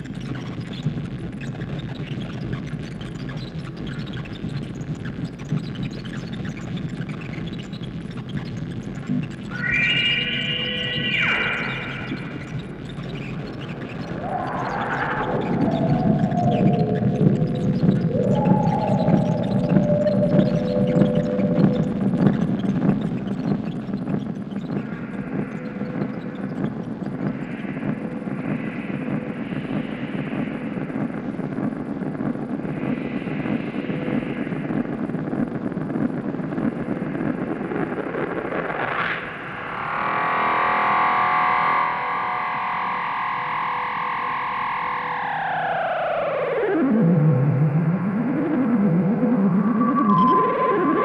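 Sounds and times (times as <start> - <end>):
modular synthesizer music: 9.2 - 30.9, 39.4 - 51.0.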